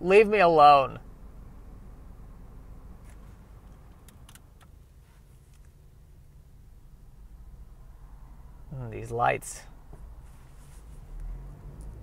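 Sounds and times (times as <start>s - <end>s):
car interior rumble: 0.0s - 12.0s
small sharp clicks: 3.0s - 4.8s.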